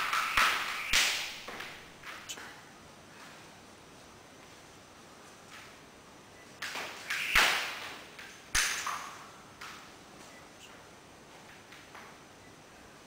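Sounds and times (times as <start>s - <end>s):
jump rope slapping floor mat: 0.0s - 2.5s, 6.6s - 9.8s.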